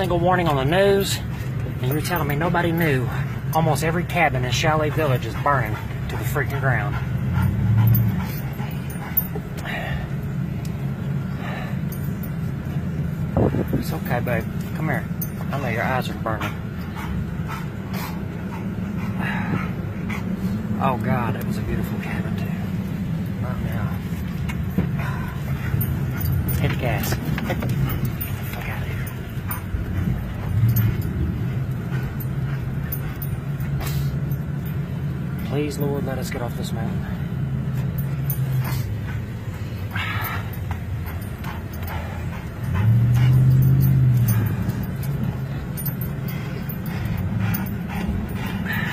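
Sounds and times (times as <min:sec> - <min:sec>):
car engine and road rumble: 0:00.0 - 0:48.9.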